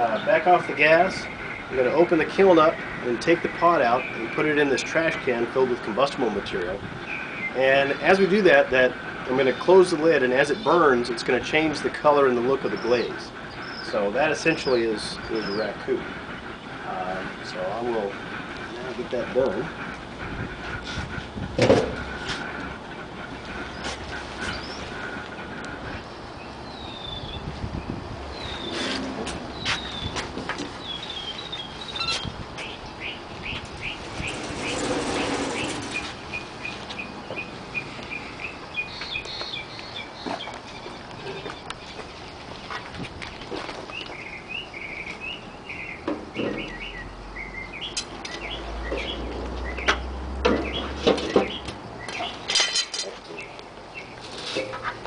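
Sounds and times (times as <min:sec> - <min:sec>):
small birds chirping: 0:00.0 - 0:21.0, 0:22.0 - 0:55.0
metal clanks and knocks: 0:49.8 - 0:51.8, 0:52.5 - 0:53.2, 0:54.4 - 0:55.0.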